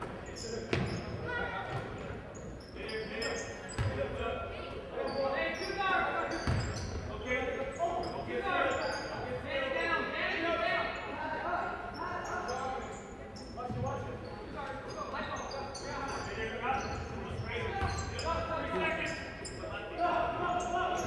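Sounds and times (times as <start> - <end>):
sneakers squeaking on hardwood: 0.0 - 4.1, 5.1 - 7.1, 11.9 - 19.6
voices echoing in gym: 0.0 - 21.0.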